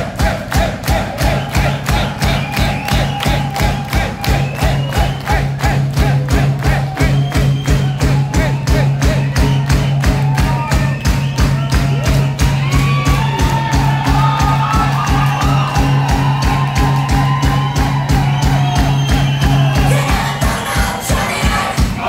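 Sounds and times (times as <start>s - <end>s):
bass guitar: 0.0s - 20.3s
fast drumbeat: 0.0s - 22.0s.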